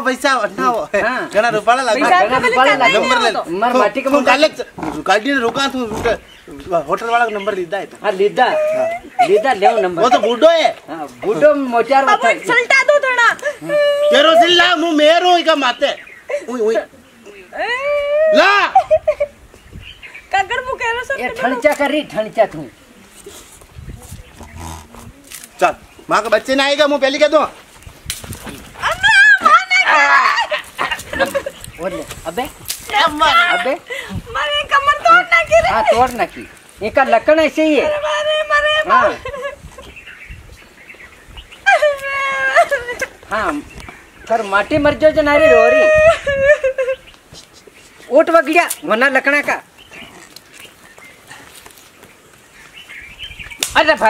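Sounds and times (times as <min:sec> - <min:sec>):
woman mock crying: 0:08.4 - 0:09.9, 0:13.4 - 0:14.6, 0:17.6 - 0:19.4, 0:41.6 - 0:43.5, 0:45.2 - 0:47.1.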